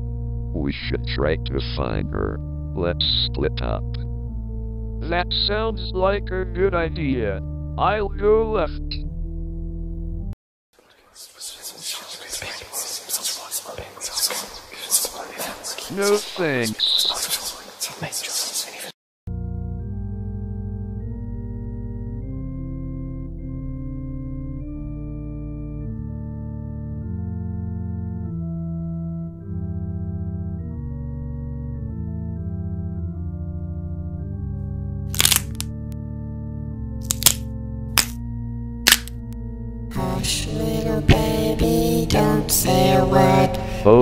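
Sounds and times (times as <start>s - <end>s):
organ chords: 0.0s - 10.4s, 19.3s - 35.1s, 35.8s - 44.0s
sharp clicks: 35.2s - 35.7s, 38.9s - 39.1s.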